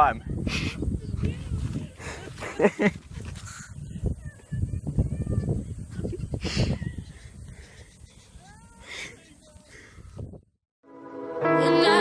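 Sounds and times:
person laughing: 2.2 - 3.0.

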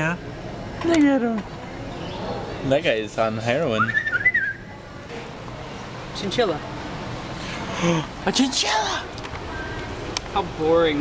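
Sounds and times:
low background hum: 0.0 - 11.0
person whistling: 3.8 - 4.6.

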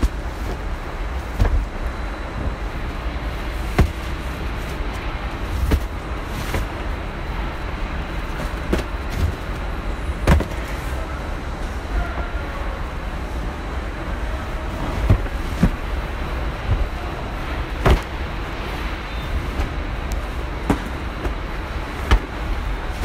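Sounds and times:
industrial machinery rumble: 0.0 - 23.0.

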